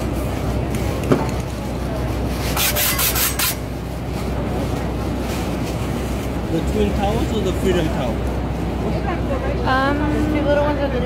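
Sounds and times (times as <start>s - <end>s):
steady low rumble: 0.0s - 2.6s, 3.6s - 11.0s.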